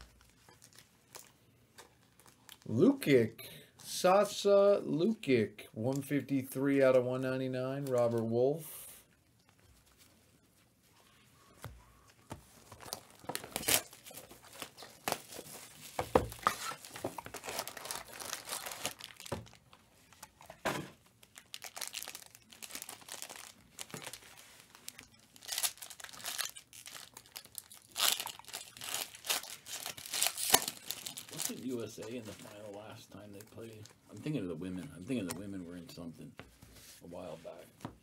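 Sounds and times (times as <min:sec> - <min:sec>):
foil packs crinkling: 0:12.6 - 0:34.4.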